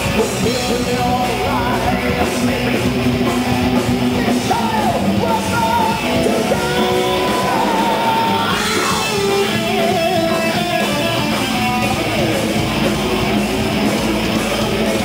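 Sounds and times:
electric guitar lead bending notes: 0.0 - 15.0
heavy metal band playing live: 0.0 - 15.0.

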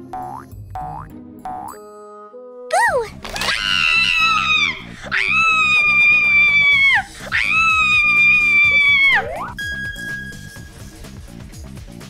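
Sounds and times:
background music: 0.0 - 12.0
woman screaming: 2.7 - 9.5.

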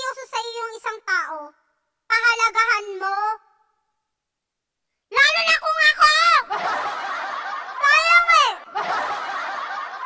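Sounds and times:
background hiss: 0.0 - 10.0
high-pitched voice laughing: 7.6 - 9.3.

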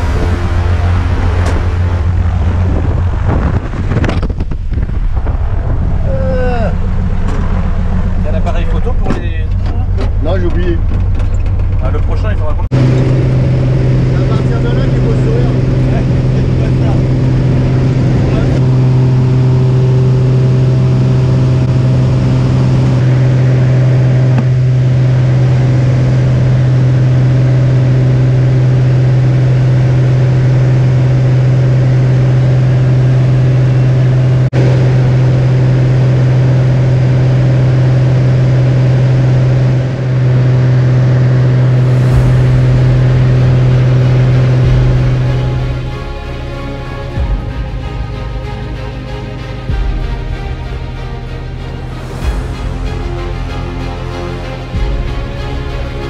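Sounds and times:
light plane engine droning: 0.0 - 56.0.

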